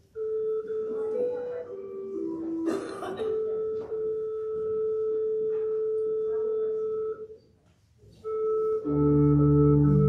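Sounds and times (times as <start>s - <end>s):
pipe organ note: 0.0s - 7.4s, 8.2s - 10.0s.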